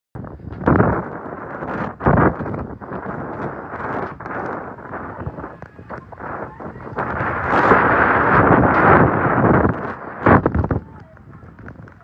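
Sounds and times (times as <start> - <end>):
steady rushing noise: 0.2 - 12.0
wind buffeting microphone: 0.2 - 12.0.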